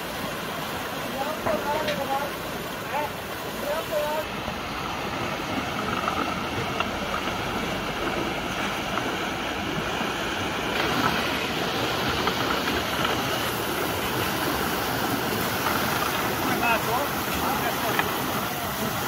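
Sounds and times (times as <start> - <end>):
floodwater rushing in channel: 0.0 - 19.0.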